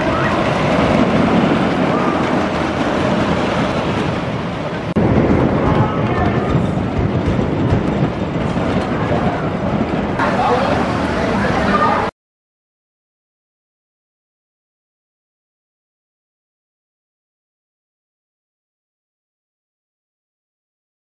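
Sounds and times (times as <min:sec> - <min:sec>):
voices: 0:00.0 - 0:03.4, 0:04.5 - 0:07.2, 0:08.5 - 0:12.1
roller coaster rumbling on track: 0:00.0 - 0:12.1.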